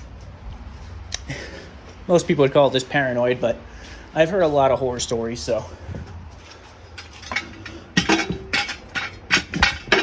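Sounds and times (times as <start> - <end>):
metal jack stand clinking on concrete: 6.8 - 10.0.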